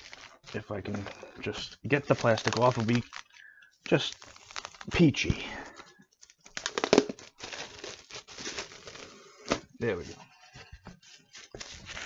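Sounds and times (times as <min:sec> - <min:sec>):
plastic wrap tearing and crinkling: 0:00.0 - 0:12.0.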